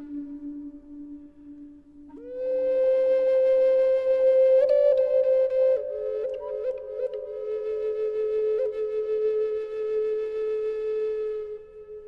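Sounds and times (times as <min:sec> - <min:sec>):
flute long held note: 0:00.0 - 0:12.0.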